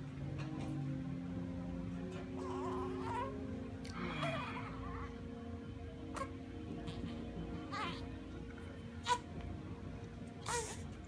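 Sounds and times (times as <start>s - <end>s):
baby cooing: 6.2s - 8.1s, 9.0s - 9.2s, 10.4s - 10.9s.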